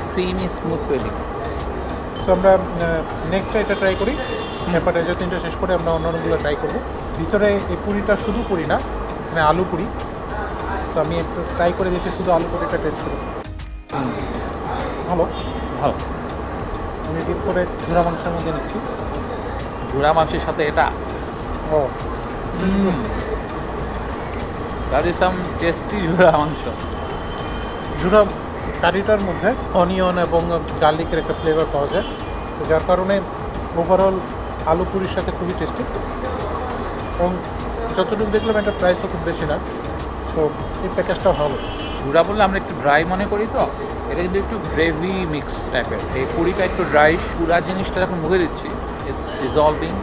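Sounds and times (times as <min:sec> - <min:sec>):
low traffic rumble: 0:00.0 - 0:50.0
man speaking: 0:13.9 - 0:16.0, 0:21.6 - 0:23.4, 0:24.9 - 0:26.9, 0:40.3 - 0:50.0.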